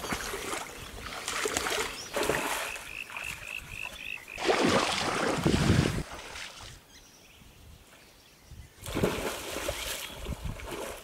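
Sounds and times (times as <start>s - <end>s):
water splash: 0.0s - 3.3s, 4.4s - 6.7s, 8.8s - 11.0s
wading through muddy water: 0.0s - 6.9s, 8.8s - 11.0s.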